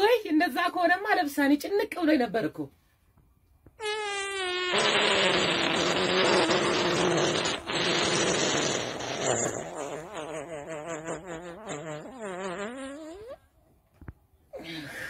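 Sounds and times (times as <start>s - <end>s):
raspy fart noise: 3.8s - 13.4s.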